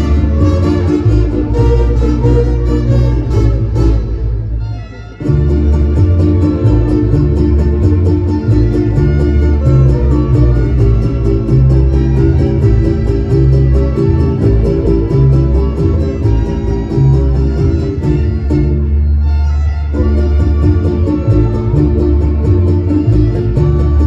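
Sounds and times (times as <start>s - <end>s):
band playing dance music: 0.0s - 24.0s.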